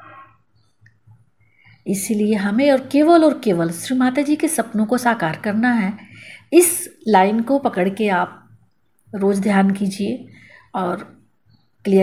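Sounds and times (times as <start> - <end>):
woman speaking: 1.8 - 11.2
woman breathing softly: 6.0 - 6.5.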